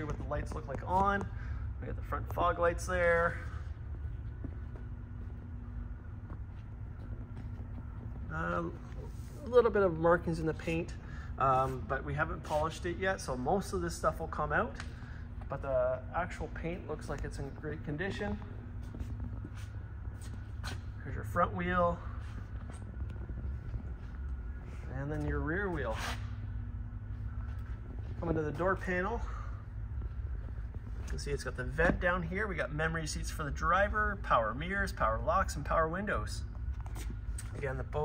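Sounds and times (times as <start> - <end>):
faint steady hum: 0.0 - 38.0
low room rumble: 0.0 - 38.0.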